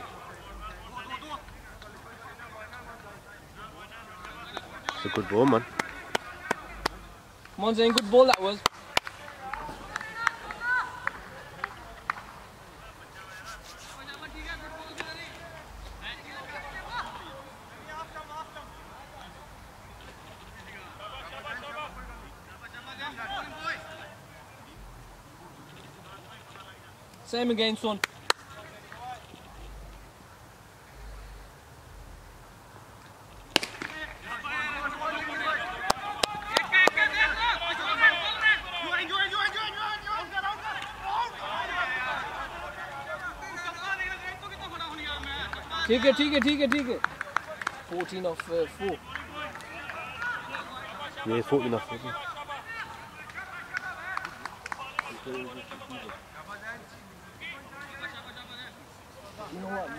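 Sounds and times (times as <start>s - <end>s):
indistinct voices calling and chatting: 0.0s - 59.9s
cricket bat striking ball: 33.5s - 34.4s.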